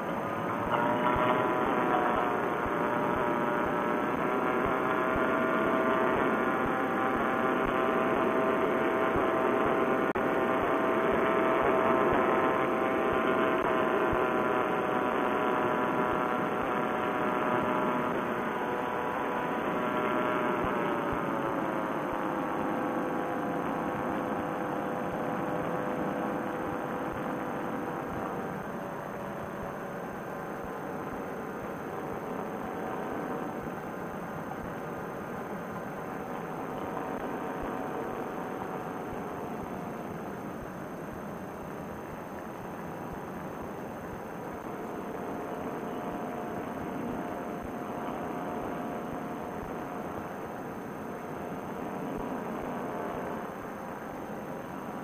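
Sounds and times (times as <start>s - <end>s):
paramotor engine and propeller droning: 0.0s - 55.0s.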